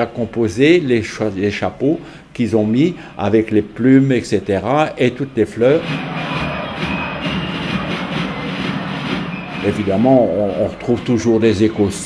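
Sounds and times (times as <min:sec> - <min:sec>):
crowd din of many voices: 0:05.6 - 0:12.0.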